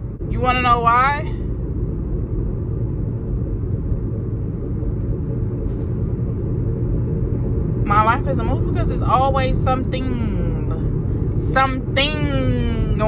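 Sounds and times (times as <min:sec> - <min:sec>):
car rumble inside cabin: 0:00.0 - 0:13.0.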